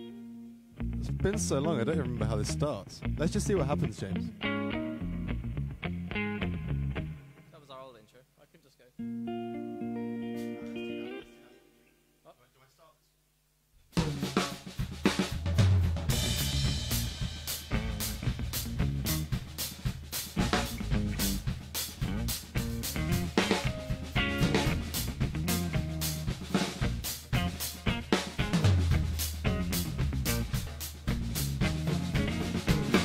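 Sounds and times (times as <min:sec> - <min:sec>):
electric guitar: 0:00.0 - 0:07.5, 0:09.0 - 0:12.0, 0:14.0 - 0:33.0
drum kit: 0:13.8 - 0:33.0.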